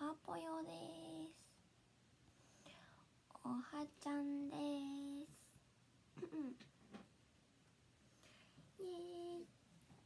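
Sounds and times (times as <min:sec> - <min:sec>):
faint whisper: 0:08.3 - 0:09.5.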